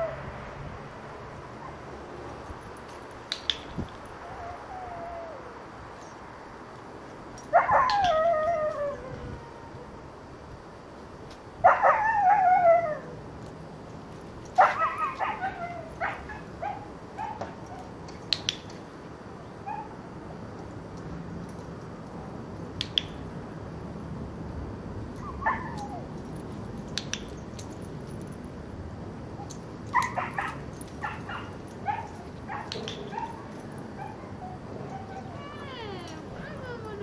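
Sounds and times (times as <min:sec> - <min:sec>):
sharp clicks: 0:03.2 - 0:04.0, 0:18.0 - 0:18.9, 0:22.8 - 0:23.3, 0:26.8 - 0:27.8, 0:32.6 - 0:33.2
dog whining: 0:31.9 - 0:37.0.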